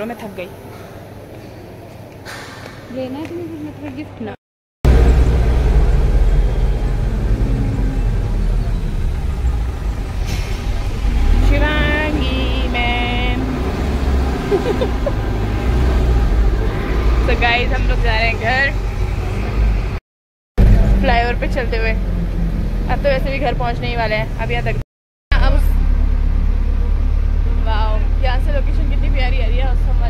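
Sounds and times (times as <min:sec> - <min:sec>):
bus engine rumble: 0:00.0 - 0:20.0, 0:20.6 - 0:30.0
woman speaking: 0:02.9 - 0:04.4, 0:11.4 - 0:13.5, 0:22.9 - 0:25.8, 0:27.6 - 0:30.0.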